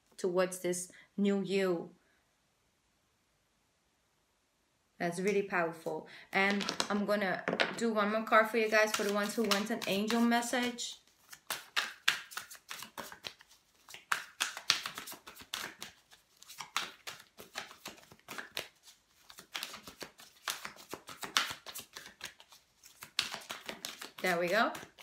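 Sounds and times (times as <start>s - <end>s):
cards being shuffled: 6.5s - 7.0s, 8.5s - 25.0s.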